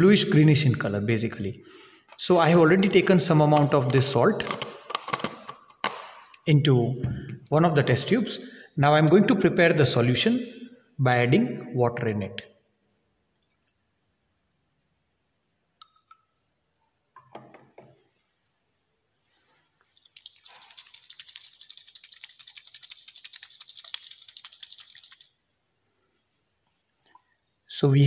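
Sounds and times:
test tube rattling and liquid sloshing: 0:02.0 - 0:06.5, 0:19.2 - 0:25.7
water pouring splash: 0:19.9 - 0:25.3.

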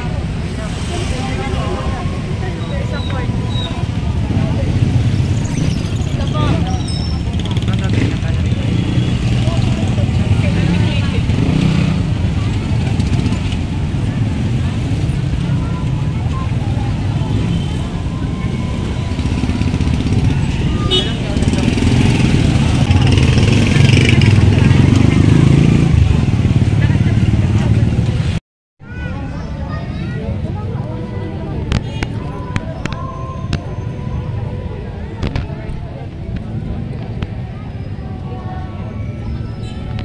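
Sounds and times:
motorcycle engines passing: 0:00.0 - 0:28.4
crowd of people talking: 0:00.0 - 0:40.0.

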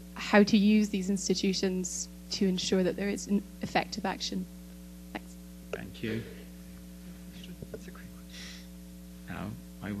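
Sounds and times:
electrical mains hum: 0:00.0 - 0:10.0
short breathy hiss: 0:08.3 - 0:08.8.

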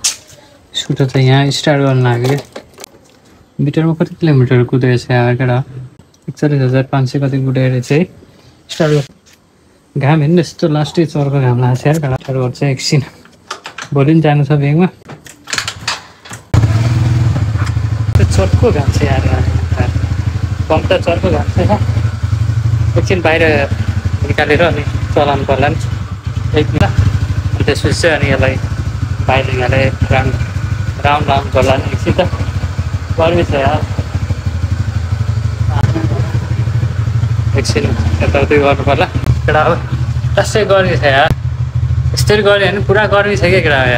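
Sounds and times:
scooter engine starting and idling: 0:16.5 - 0:43.9.

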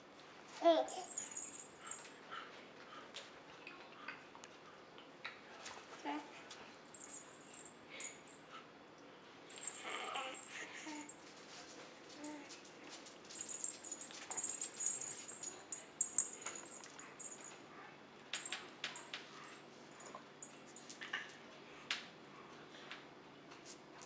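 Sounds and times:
soft-toy rattle shaken: 0:00.8 - 0:02.1, 0:09.5 - 0:17.6
faint infant sounds: 0:09.7 - 0:11.1
faint rattle: 0:13.3 - 0:17.6.

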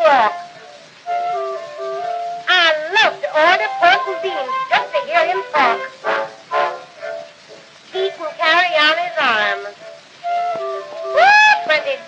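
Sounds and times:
small orchestra playing: 0:00.0 - 0:12.0
woman singing: 0:02.5 - 0:05.9.

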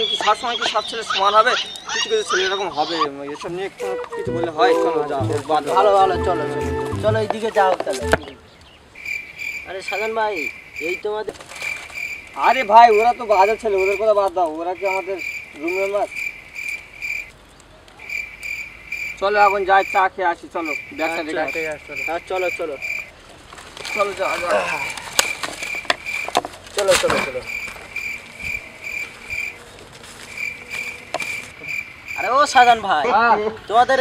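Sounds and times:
insect chirping: 0:00.0 - 0:04.0, 0:08.2 - 0:34.0.

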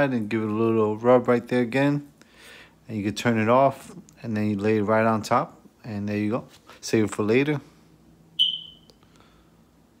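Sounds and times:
high-pitched ding: 0:08.4 - 0:08.9.

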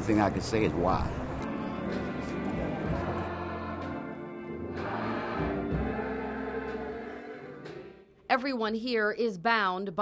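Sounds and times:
choir singing held notes: 0:01.4 - 0:08.2.

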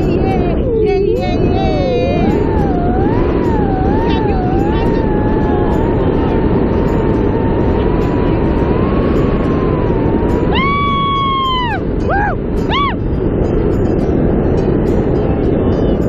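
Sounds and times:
person holding high-pitched note: 0:00.0 - 0:14.0
wind rushing over microphone: 0:00.0 - 0:16.0.

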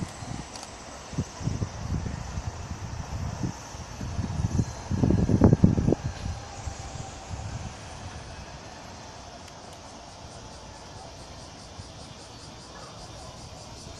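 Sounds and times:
low rumbling gusts: 0:00.0 - 0:12.6
distant steam locomotive: 0:00.0 - 0:13.9.

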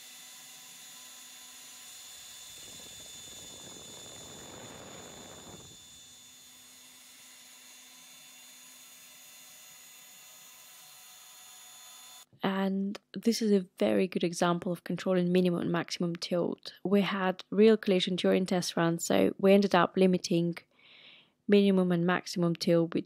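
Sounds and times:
router spindle high whine: 0:00.0 - 0:12.3
rushing cutting noise: 0:01.6 - 0:06.3.

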